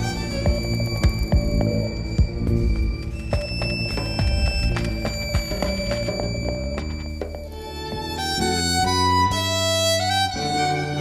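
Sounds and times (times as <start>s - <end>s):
drum strikes: 0.0s - 7.5s
long high tones: 0.0s - 11.0s
low bass: 0.0s - 11.0s.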